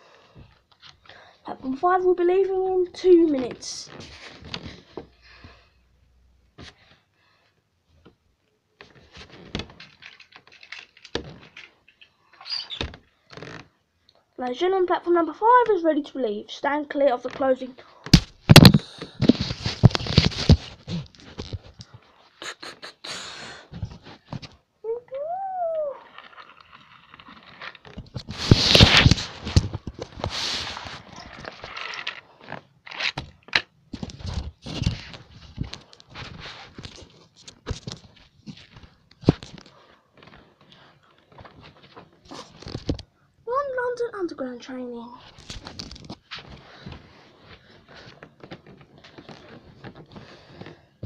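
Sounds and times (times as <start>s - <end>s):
toy trains handled on carpet: 8.8s - 12.1s, 26.0s - 43.1s
rustling: 17.3s - 22.4s, 25.8s - 33.2s
person humming: 25.0s - 26.1s.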